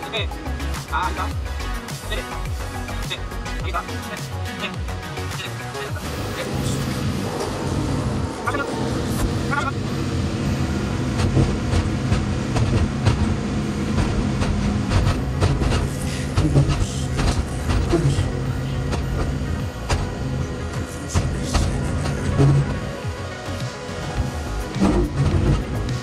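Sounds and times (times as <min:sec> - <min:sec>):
background music: 0:00.0 - 0:26.0
excavator diesel engine running: 0:00.0 - 0:26.0.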